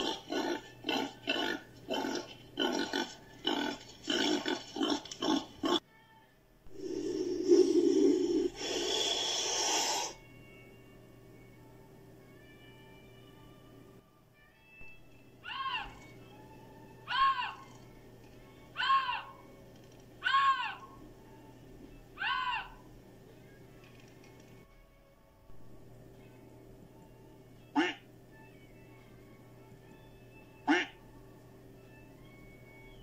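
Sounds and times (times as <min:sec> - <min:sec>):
faint background hum: 0:00.0 - 0:33.0
lynx mewing calls: 0:17.1 - 0:17.8, 0:22.2 - 0:22.8, 0:27.8 - 0:28.0, 0:30.6 - 0:31.0
waterfowl honk: 0:27.8 - 0:28.0, 0:30.7 - 0:31.0.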